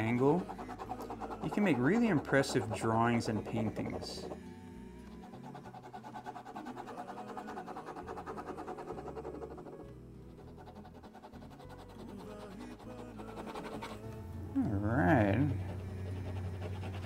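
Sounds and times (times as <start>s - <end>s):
pen scratching on paper: 0.0s - 14.2s, 15.2s - 17.0s.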